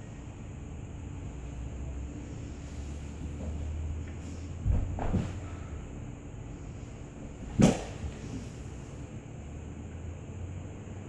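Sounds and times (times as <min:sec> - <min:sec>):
steady low hum: 0:00.0 - 0:11.0
body thud on concrete floor: 0:04.6 - 0:05.5, 0:07.4 - 0:08.4.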